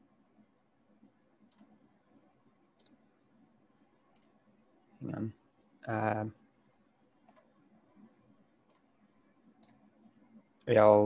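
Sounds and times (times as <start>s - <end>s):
computer mouse clicks: 1.4s - 1.8s, 2.7s - 3.0s, 4.1s - 4.4s, 6.3s - 10.7s.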